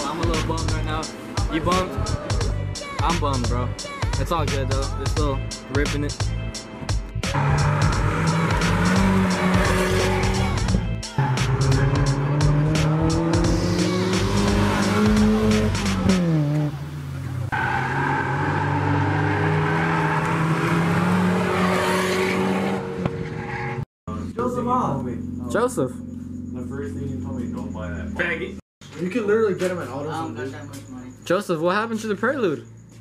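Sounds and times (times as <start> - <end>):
car engine at high revs: 7.3 - 23.8.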